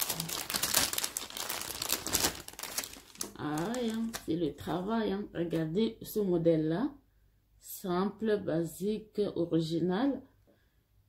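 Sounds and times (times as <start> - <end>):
plastic bag crinkling: 0.0 - 4.9.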